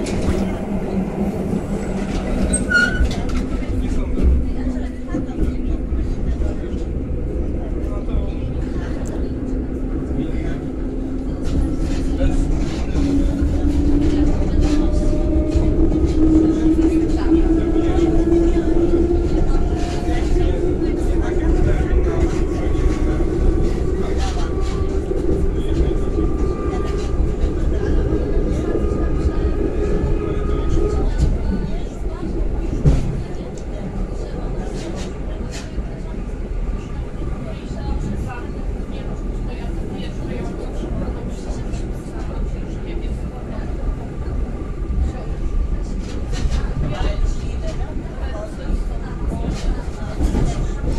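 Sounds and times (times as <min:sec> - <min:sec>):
train wheels rumbling: 0:00.0 - 0:50.9.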